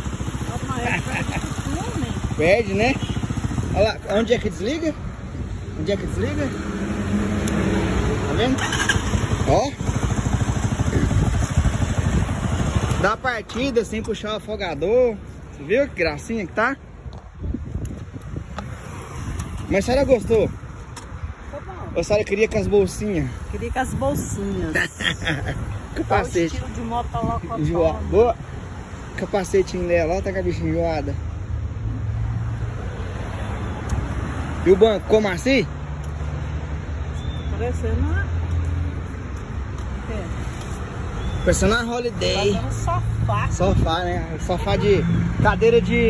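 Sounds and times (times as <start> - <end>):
motorcycle engine idling: 0.0 - 4.5, 8.5 - 14.2.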